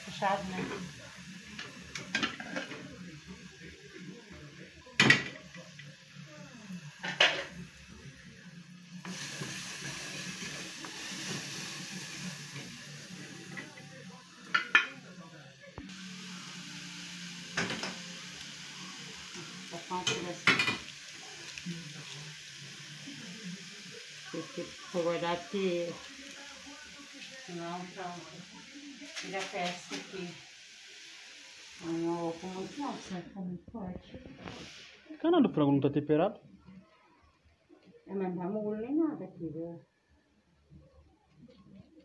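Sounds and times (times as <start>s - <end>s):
food sizzling in a pan: 0.0s - 35.8s
cookware clinking and knocking: 1.9s - 2.8s, 14.5s - 15.0s, 20.0s - 20.8s.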